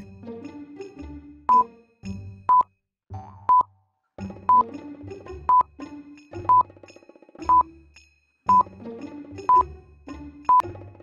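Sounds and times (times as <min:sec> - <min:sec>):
light background music: 0:00.0 - 0:02.6, 0:04.2 - 0:11.0
countdown timer beeping: 0:03.4 - 0:03.7, 0:04.5 - 0:04.7, 0:06.4 - 0:06.7, 0:07.4 - 0:07.7, 0:08.5 - 0:08.7, 0:09.5 - 0:09.7.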